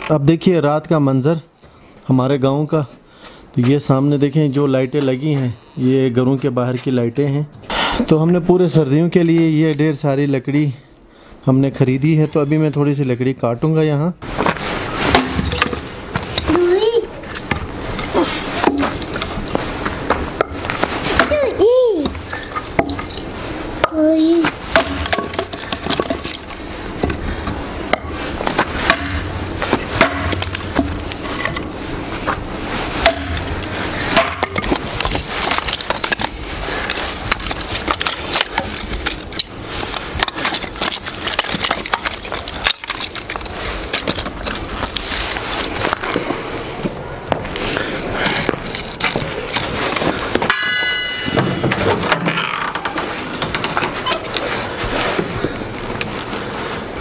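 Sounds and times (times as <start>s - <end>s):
axe splitting firewood: 14.4s - 24.0s, 24.6s - 46.2s
clatter of split wood pieces: 15.1s - 16.5s, 24.8s - 31.7s, 33.0s - 46.2s.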